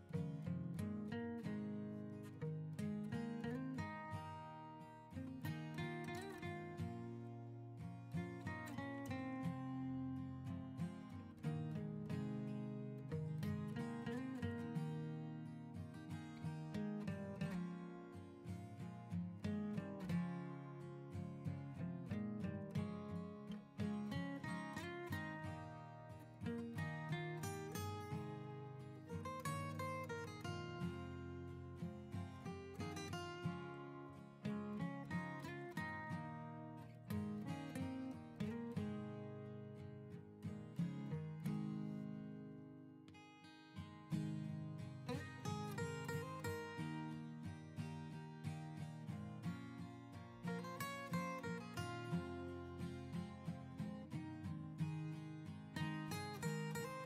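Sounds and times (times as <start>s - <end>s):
acoustic guitar plucking: 0.0s - 57.0s.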